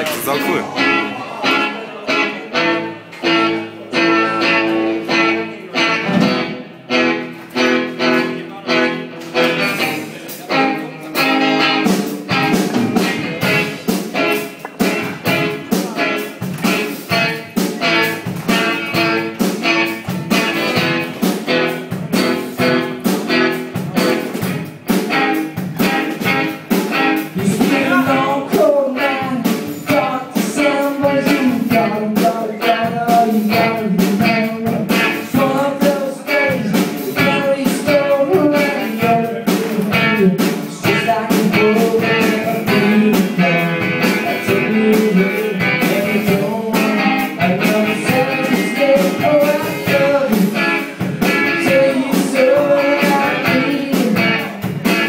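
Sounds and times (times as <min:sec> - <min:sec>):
man singing: 0:00.0 - 0:02.8, 0:26.9 - 0:55.0
electric guitar strumming: 0:00.0 - 0:55.0.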